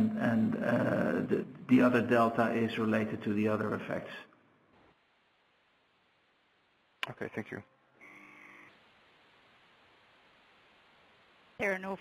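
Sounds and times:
faint line hiss: 0.0s - 12.0s.

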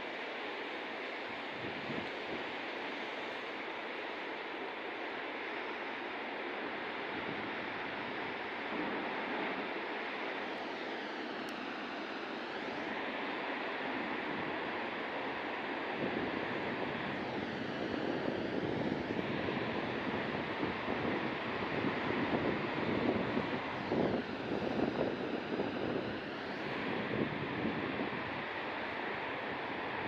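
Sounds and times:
heavy ocean surf: 0.0s - 30.0s
wind buffeting microphone: 16.0s - 28.5s.

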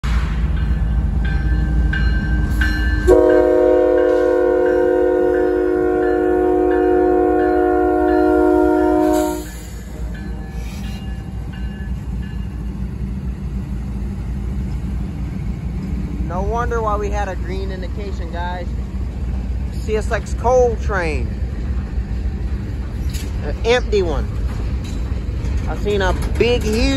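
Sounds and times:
locomotive engine rumbling: 0.0s - 26.9s
crossing bell dinging: 0.5s - 12.9s
train horn blast: 3.1s - 9.6s.

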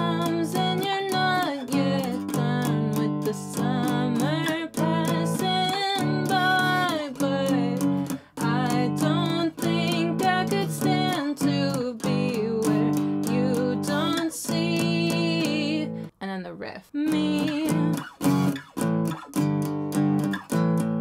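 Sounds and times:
strummed acoustic guitar: 0.0s - 16.1s, 17.1s - 21.0s
woman singing: 0.0s - 18.6s.

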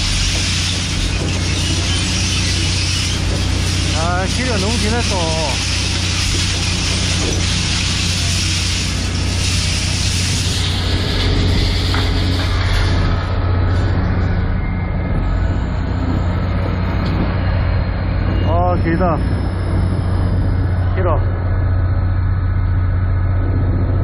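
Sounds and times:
hydraulic hiss: 0.0s - 12.9s
truck engine hum: 0.0s - 24.0s.

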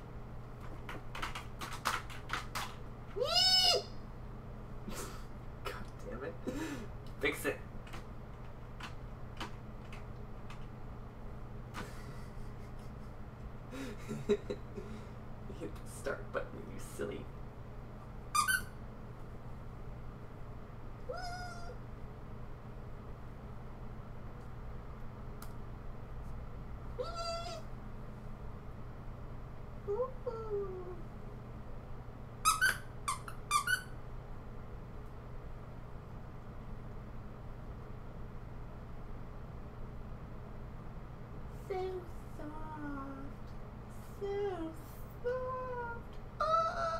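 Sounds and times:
computer keyboard clicks: 0.6s - 2.8s.

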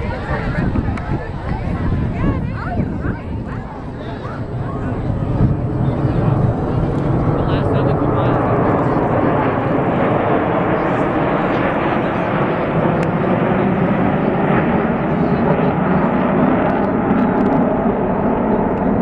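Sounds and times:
jets flying overhead: 0.0s - 19.0s.

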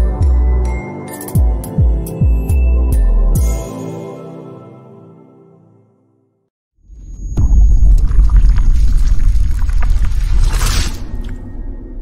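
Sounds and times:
crackles: 6.9s - 12.0s
deep rumble with hit: 7.0s - 12.0s.

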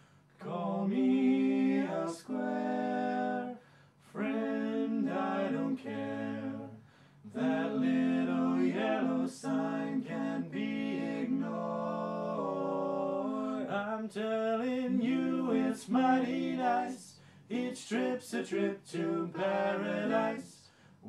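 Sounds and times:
men singing a cappella harmony: 0.4s - 20.8s.

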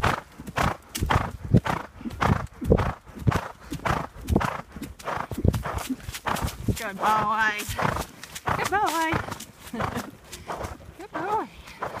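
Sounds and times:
hoofbeats on leaf-covered dirt: 0.0s - 12.0s.

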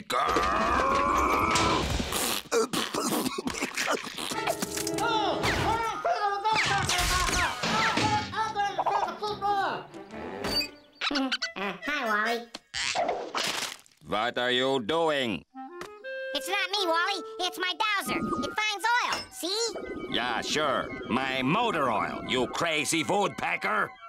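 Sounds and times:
cartoon music: 11.0s - 12.4s, 15.6s - 24.0s
wavering pitched noises: 18.0s - 22.8s.

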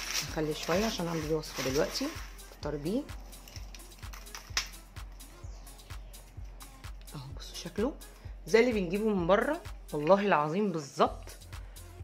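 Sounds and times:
background music with low beat: 0.0s - 12.0s.

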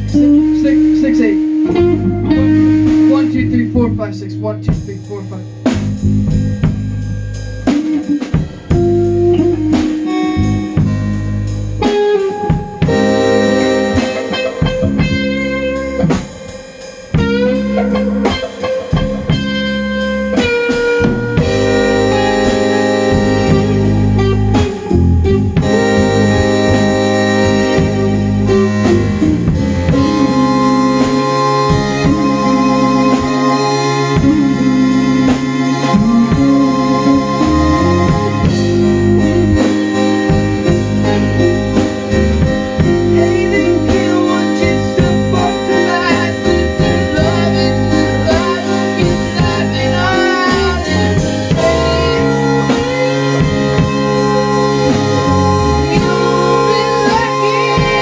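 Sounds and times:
drum kit: 0.0s - 58.0s
electric bass: 0.0s - 58.0s
electric guitar: 0.0s - 58.0s
keyboard: 0.0s - 58.0s.

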